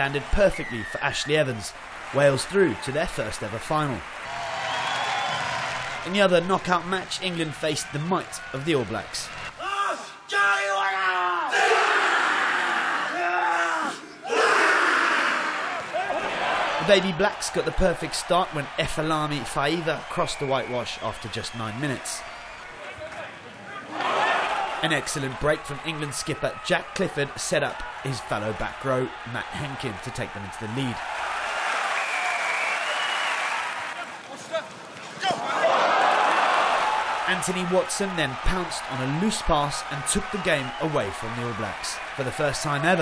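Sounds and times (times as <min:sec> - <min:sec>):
stadium crowd cheering: 0:00.0 - 0:43.0
team shouting together: 0:09.6 - 0:16.5.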